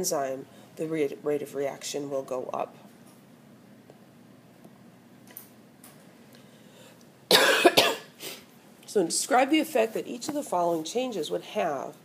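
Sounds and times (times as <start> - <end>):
woman coughing: 7.3 - 8.2.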